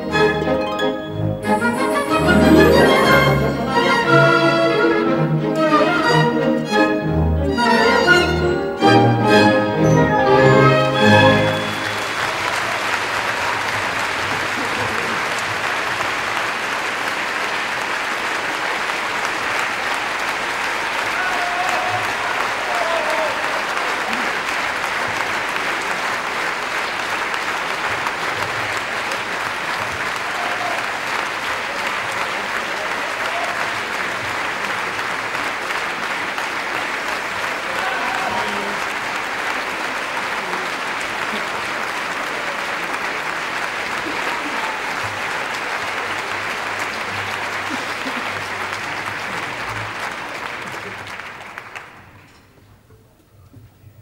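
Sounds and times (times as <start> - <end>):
audience applauding: 0.0 - 52.5.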